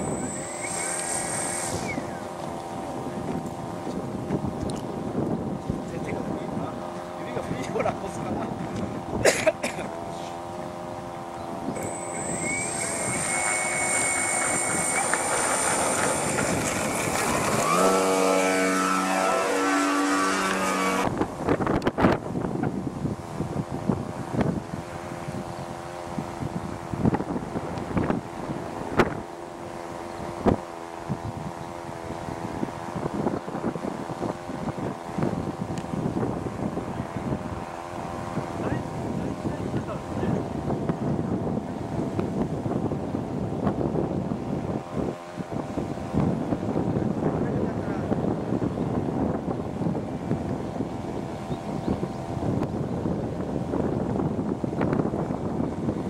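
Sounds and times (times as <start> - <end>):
model plane motor whining: 0.0 - 6.1, 10.0 - 22.2.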